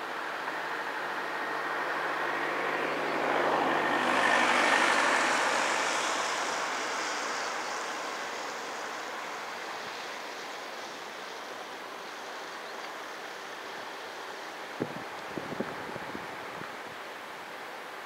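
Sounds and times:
road vehicle passing: 0.2 - 12.2.

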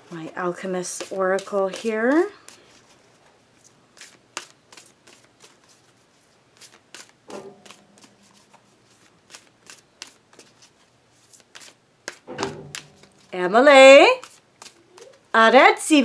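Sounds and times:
cards being shuffled: 0.9 - 13.4, 14.1 - 15.3.

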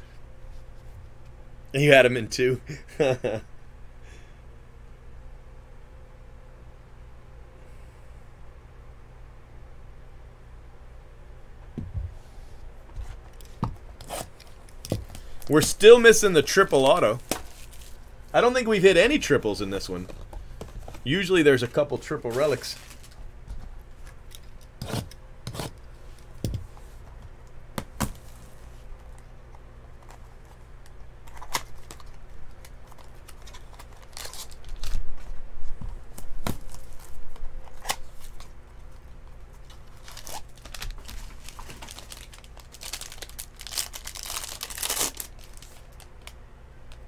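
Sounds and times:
foil wrapper tearing and crinkling: 14.1 - 18.0, 31.2 - 35.3, 39.6 - 46.4.

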